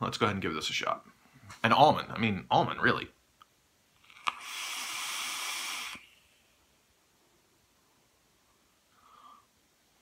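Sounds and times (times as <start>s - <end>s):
airy hiss of air drawn through: 4.2s - 6.4s.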